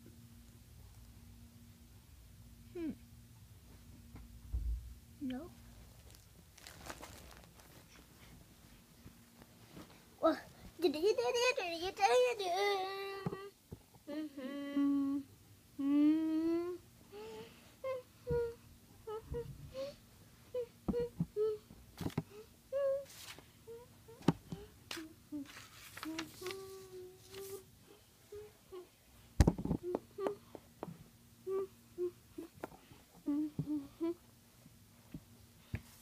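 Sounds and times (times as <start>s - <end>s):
child humming: 2.7s - 3.1s, 12.1s - 21.7s, 22.3s - 29.0s, 29.8s - 30.4s, 31.4s - 34.2s.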